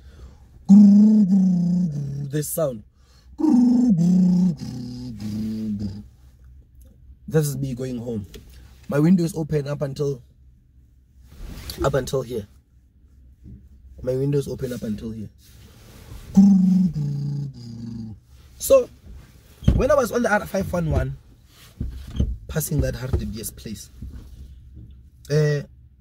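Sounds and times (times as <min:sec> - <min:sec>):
man's held low vocal note: 0:00.7 - 0:02.4, 0:03.4 - 0:06.0, 0:16.4 - 0:18.2.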